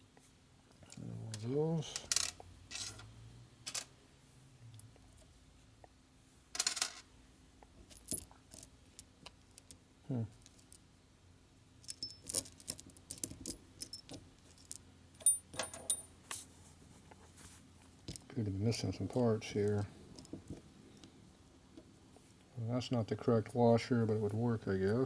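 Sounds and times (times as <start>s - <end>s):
bolts clinking on metal bench: 11.9s - 14.2s, 15.2s - 16.2s.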